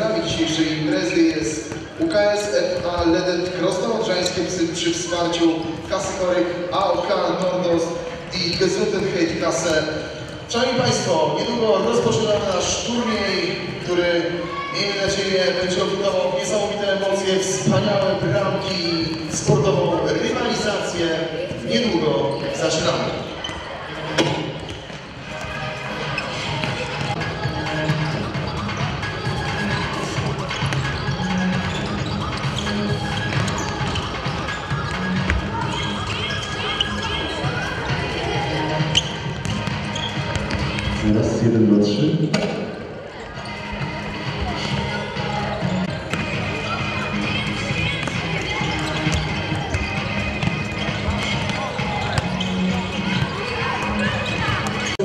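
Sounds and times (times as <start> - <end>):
footballs being kicked and bounced: 0.0 - 41.1, 44.2 - 55.0
hubbub of voices: 0.0 - 55.0
music playing in echoing hall: 0.0 - 55.0.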